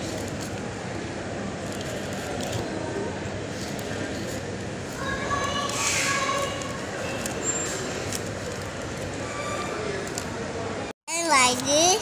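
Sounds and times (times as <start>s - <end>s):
shopping mall hubbub: 0.0s - 12.0s.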